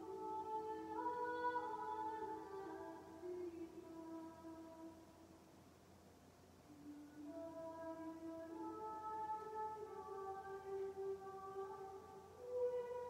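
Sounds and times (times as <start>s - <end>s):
soft meditation music: 0.0s - 13.0s.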